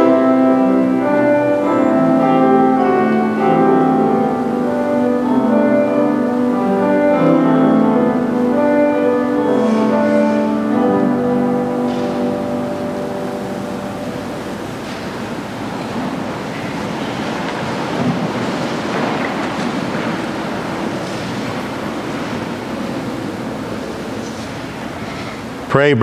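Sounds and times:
steady rushing noise: 0:00.0 - 0:25.7
piano music: 0:00.0 - 0:25.9.

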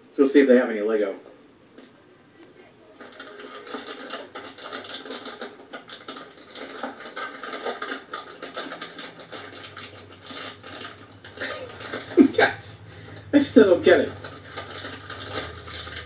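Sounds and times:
plastic packets crinkling: 0:03.0 - 0:16.0.

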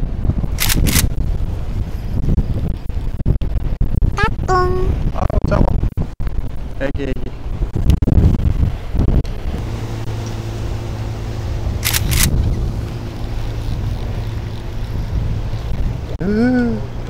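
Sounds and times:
wind gusting on microphone: 0:00.0 - 0:17.0
sharp clicks: 0:00.6 - 0:01.1, 0:11.8 - 0:12.3
boat engine humming: 0:08.5 - 0:17.0.

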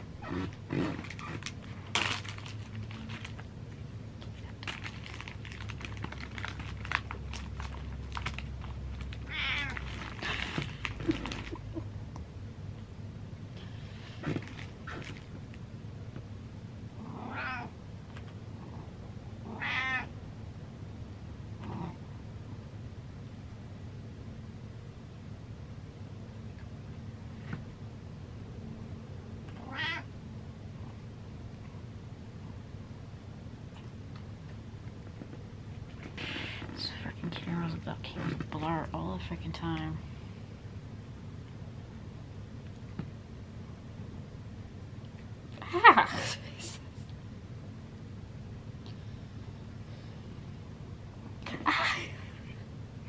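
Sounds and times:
plastic bag crinkling: 0:01.0 - 0:03.5, 0:04.4 - 0:11.6
cat meowing: 0:09.2 - 0:09.8, 0:17.2 - 0:17.7, 0:19.5 - 0:20.1, 0:29.6 - 0:30.1.

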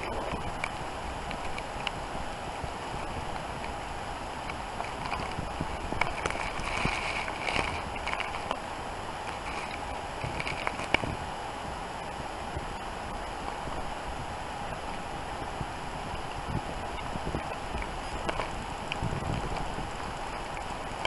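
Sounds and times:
steady hiss: 0:00.0 - 0:21.0.

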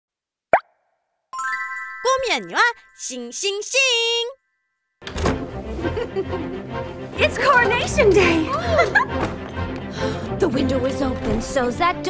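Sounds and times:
chiming chord with shimmer: 0:01.4 - 0:03.2.

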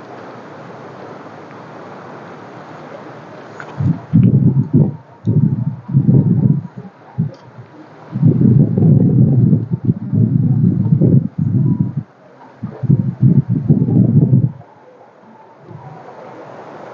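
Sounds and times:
wind buffeting microphone: 0:03.4 - 0:16.9.

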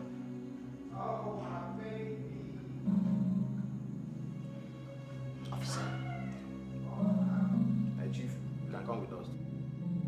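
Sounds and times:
low background music: 0:00.0 - 0:10.0
wavering cry: 0:05.5 - 0:07.8.

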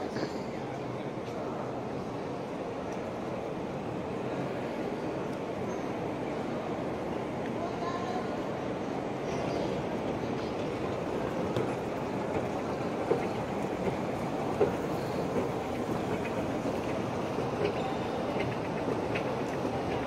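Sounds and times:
escalator steps clicking: 0:10.6 - 0:20.0.

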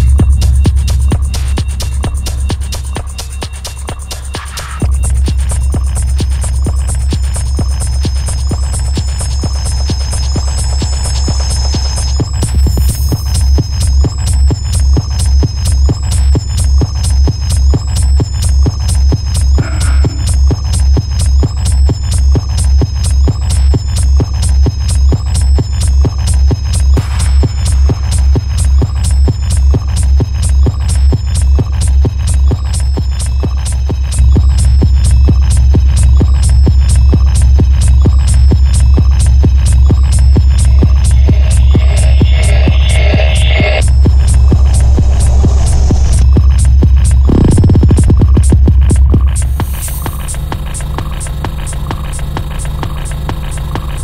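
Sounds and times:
heavy continuous bass: 0:00.0 - 0:54.0
techno kick drum: 0:00.0 - 0:54.0
repeating high synth figure: 0:40.4 - 0:46.3, 0:47.3 - 0:48.0.

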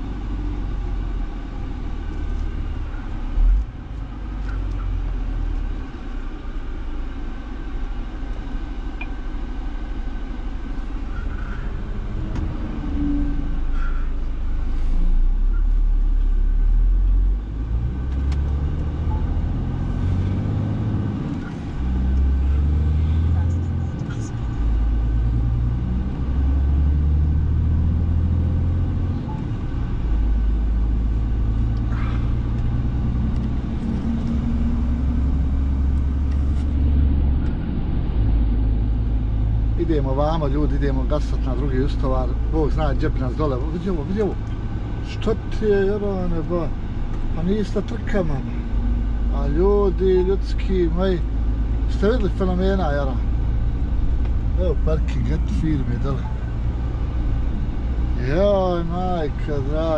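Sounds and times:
lorry diesel engine droning: 0:00.0 - 0:59.9
road noise inside cab: 0:00.0 - 0:59.9.

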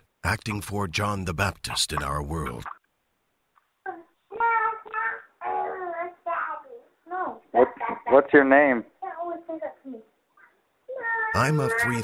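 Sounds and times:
child's sing-song voice over telephone: 0:03.9 - 0:08.1, 0:10.9 - 0:12.0.

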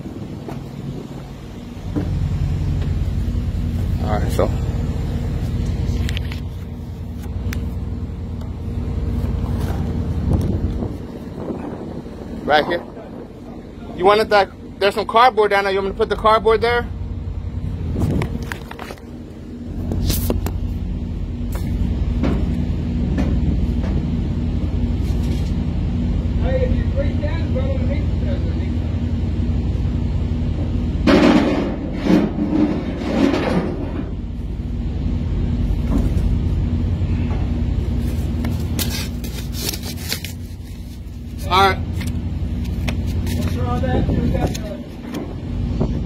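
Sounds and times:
diesel truck engine idling: 0:00.0 - 0:46.0
muffled voices: 0:11.4 - 0:16.9.

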